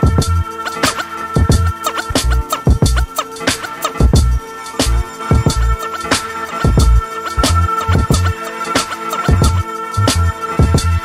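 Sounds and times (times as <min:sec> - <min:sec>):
hip hop beat with heavy bass drum: 0:00.0 - 0:11.0
record scratching: 0:00.0 - 0:11.0.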